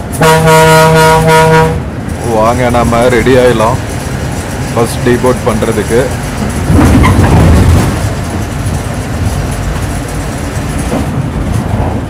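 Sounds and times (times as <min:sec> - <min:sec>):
city traffic: 0:00.0 - 0:12.0
vehicle horn blast: 0:00.2 - 0:01.8.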